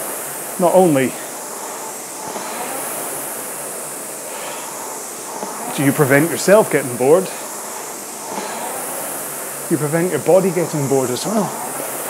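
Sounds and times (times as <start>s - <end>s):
rowing machine flywheel whooshing: 0.0s - 12.0s.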